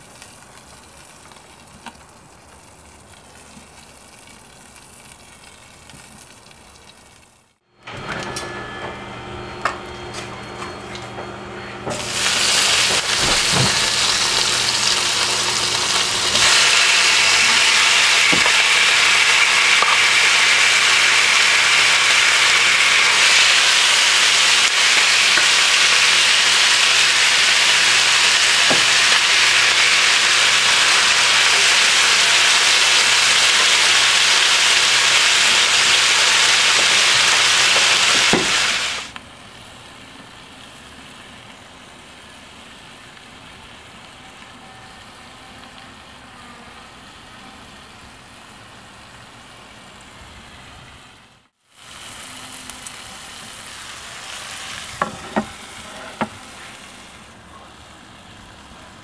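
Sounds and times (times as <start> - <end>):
food sizzling in hot oil: 11.9 - 44.2, 51.0 - 57.4.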